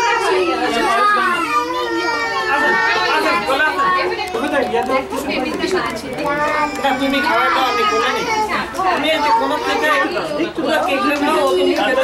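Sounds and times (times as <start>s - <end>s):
adults and children chattering: 0.0s - 12.0s.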